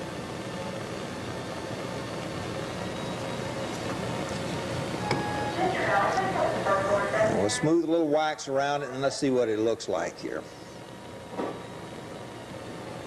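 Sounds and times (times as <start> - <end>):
low hiss and hum: 0.0 - 13.0.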